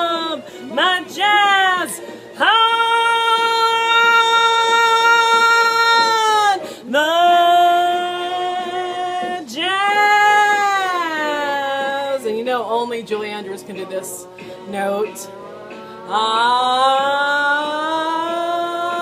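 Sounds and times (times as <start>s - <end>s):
woman singing long notes: 0.0s - 12.4s, 14.3s - 19.0s.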